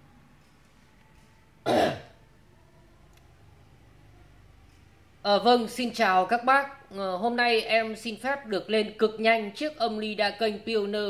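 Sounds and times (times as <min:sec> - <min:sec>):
person clearing throat: 0:01.6 - 0:02.2.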